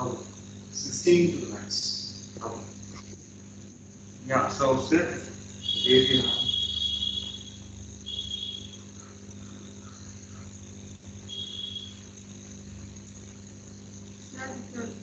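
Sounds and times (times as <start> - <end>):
cricket trilling: 0.0 - 15.0.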